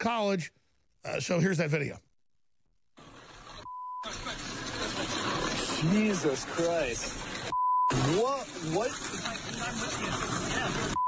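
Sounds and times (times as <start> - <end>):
hissy video background sound: 3.0 - 11.0
steady beep: 7.5 - 8.0.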